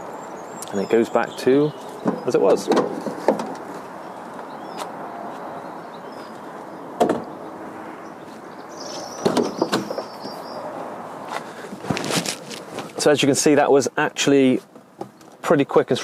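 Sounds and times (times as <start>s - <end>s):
outdoor background noise: 0.0s - 16.0s
car door opening: 1.9s - 3.8s.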